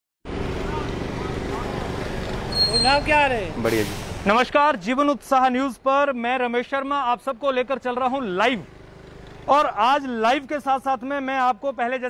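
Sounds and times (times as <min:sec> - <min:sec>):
low hum of vehicle engines: 0:00.3 - 0:12.0.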